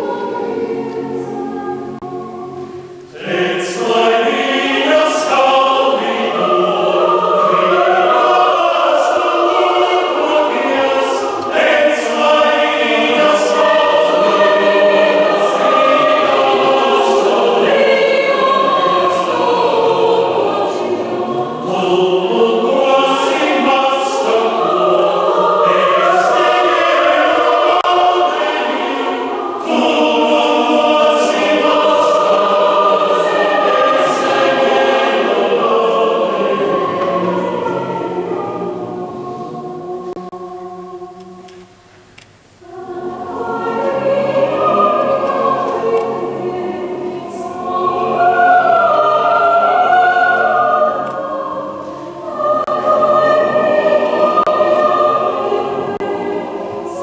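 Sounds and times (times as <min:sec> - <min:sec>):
mixed choir singing chords: 0:00.0 - 0:57.0.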